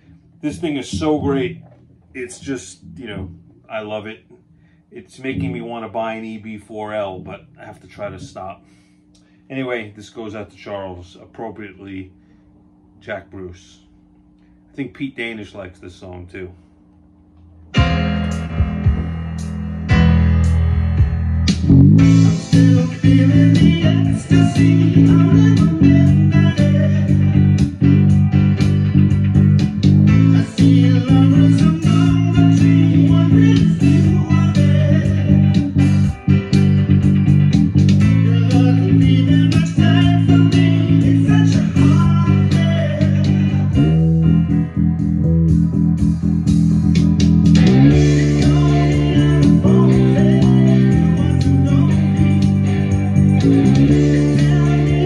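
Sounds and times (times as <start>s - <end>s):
electric bass line: 0.0s - 15.4s, 16.8s - 55.0s
rock band with drums: 17.8s - 55.0s.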